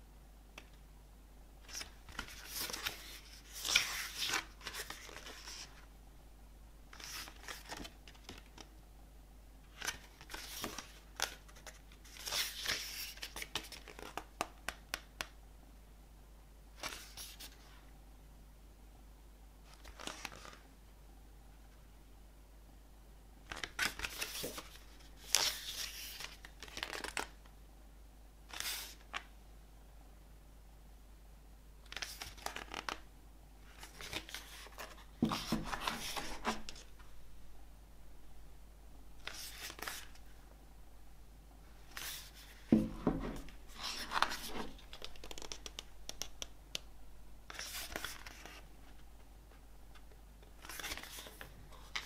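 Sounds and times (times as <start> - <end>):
paper pages rustling: 1.7 - 5.8, 33.8 - 37.1, 39.2 - 40.3, 41.8 - 46.4, 47.5 - 49.0, 49.9 - 52.0.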